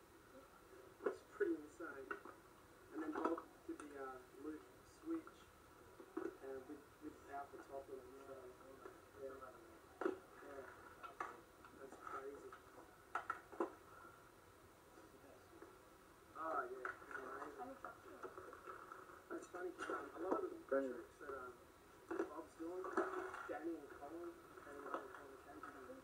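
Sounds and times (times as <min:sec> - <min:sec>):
muffled man speaking through tv speaker: 0:01.0 - 0:02.2, 0:02.9 - 0:05.5, 0:06.2 - 0:12.9, 0:16.3 - 0:26.0.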